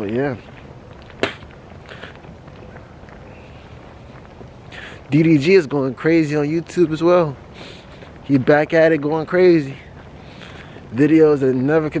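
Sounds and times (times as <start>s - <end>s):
low steady outdoor hiss: 0.0s - 12.0s.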